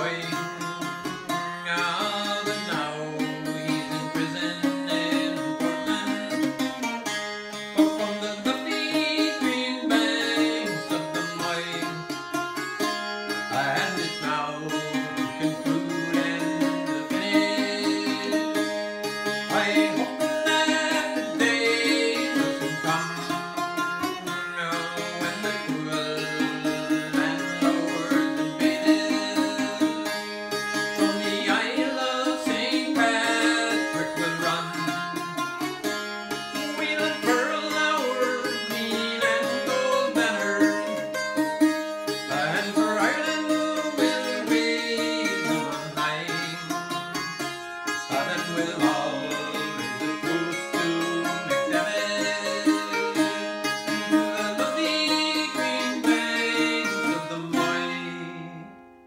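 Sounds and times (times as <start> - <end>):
bouzouki folk tune: 0.0 - 59.0.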